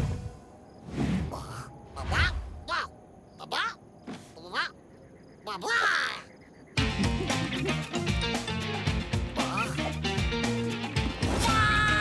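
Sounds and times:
cartoon squeaky voice calls: 4.4s - 4.8s, 5.4s - 6.3s
music: 6.8s - 12.0s.

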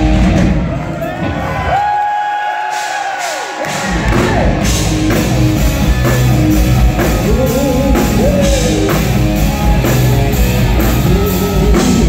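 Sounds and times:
hard rock band playing: 0.0s - 1.7s, 2.7s - 12.0s.

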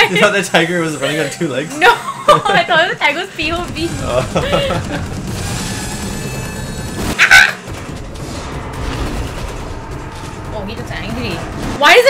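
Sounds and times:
film music: 0.0s - 12.0s
low rumbling effects: 2.6s - 12.0s.

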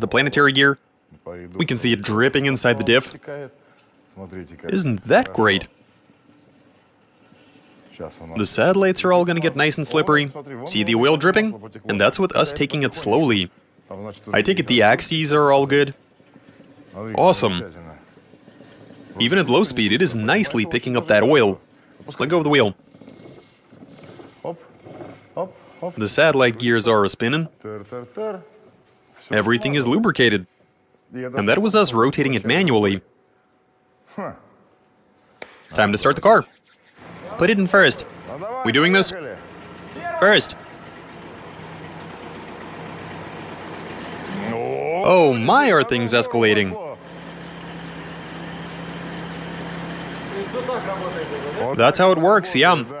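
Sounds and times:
car engine and axle hum: 37.0s - 44.7s, 45.5s - 52.3s
gear spinning through oil: 37.0s - 44.7s.

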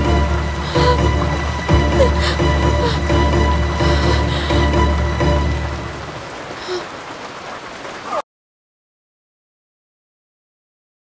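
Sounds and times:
steady rain hissing: 0.0s - 8.2s.

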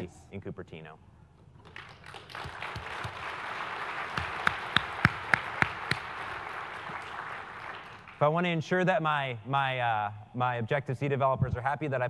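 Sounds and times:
close loud claps: 1.6s - 8.2s
audience applause: 1.7s - 8.2s.

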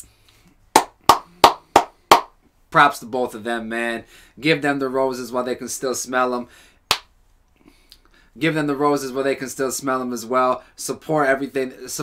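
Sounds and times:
man clapping hands: 0.8s - 2.3s.

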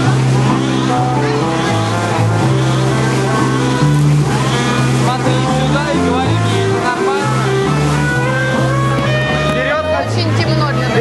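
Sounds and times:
live noise rock band playing: 0.0s - 11.0s.

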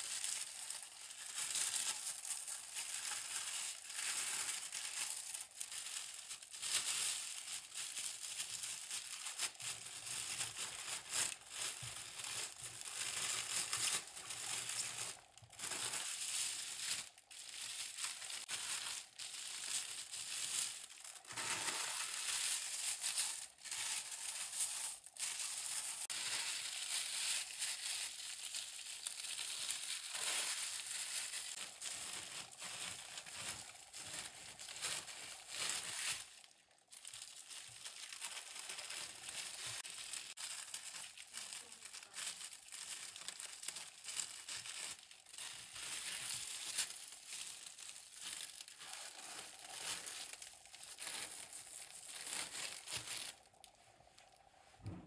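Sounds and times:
material crinkling and rustling: 0.0s - 55.0s.

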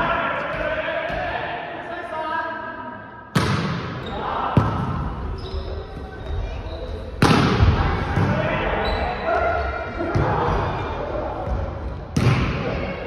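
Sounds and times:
volleyball being hit: 3.4s - 4.0s.

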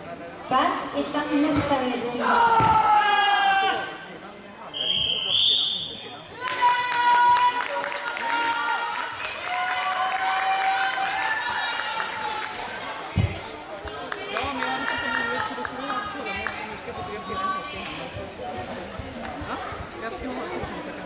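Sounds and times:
people's voices in a hall: 0.0s - 21.0s
people shouting and calling: 2.2s - 4.0s.

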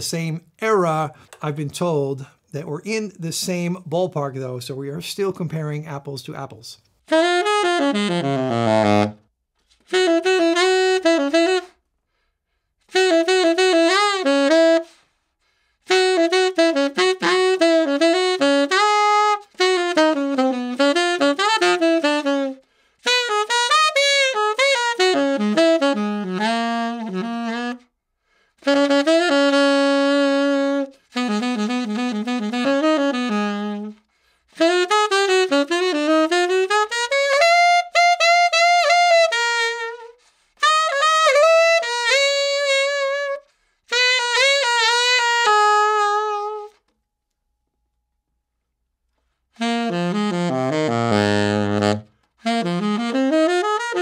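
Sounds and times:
solo jazz tenor saxophone: 0.0s - 46.9s, 49.2s - 54.0s.

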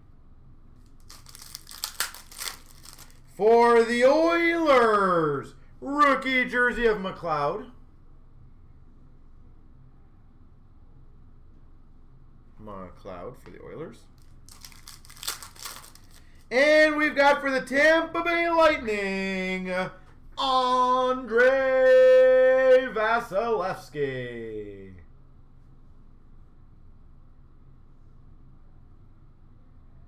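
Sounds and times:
foil wrapper crinkling: 0.8s - 3.3s, 14.1s - 16.5s.

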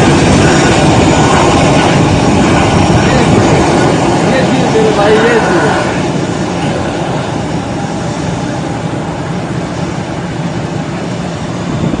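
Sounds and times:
rush of water spray: 0.0s - 7.6s
jet engines running: 0.0s - 12.0s.

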